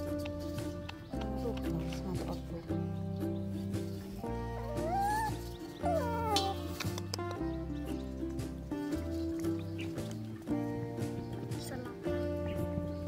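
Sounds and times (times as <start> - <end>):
background music with bass: 0.0 - 13.0
puppy whining: 4.5 - 7.4.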